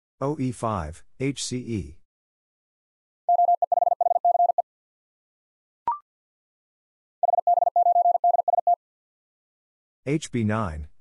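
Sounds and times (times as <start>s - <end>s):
morse code beeps: 3.3s - 4.6s, 7.2s - 8.8s.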